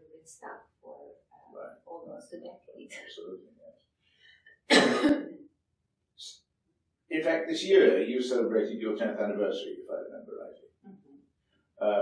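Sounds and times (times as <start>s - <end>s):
person coughing: 4.7s - 5.4s.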